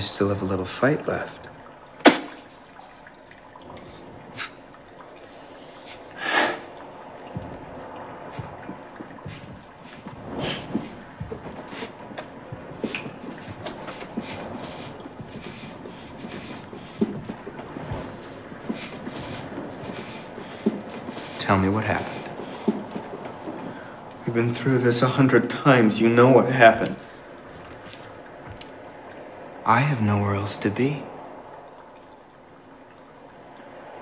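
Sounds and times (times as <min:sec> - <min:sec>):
faint clicks and knocks: 0:26.8 - 0:28.8.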